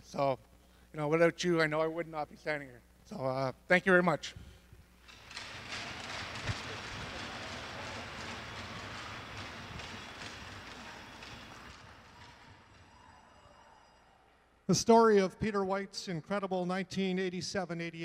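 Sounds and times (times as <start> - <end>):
audience applauding: 5.1 - 14.0.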